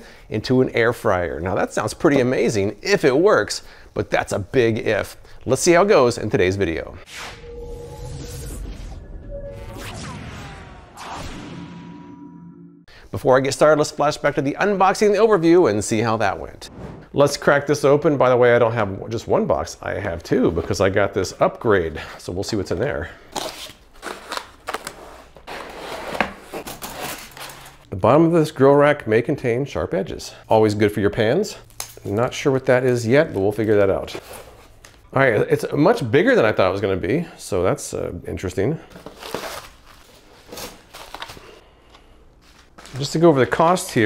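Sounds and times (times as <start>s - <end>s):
bubble-wrap and cardboard crinkling: 23.3s - 27.8s, 38.9s - 41.5s
cardboard and foam rustling: 38.9s - 41.5s.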